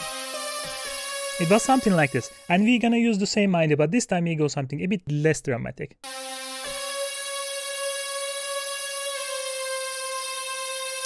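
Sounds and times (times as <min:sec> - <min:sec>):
synthesizer note held: 0:00.0 - 0:02.9, 0:06.0 - 0:11.0.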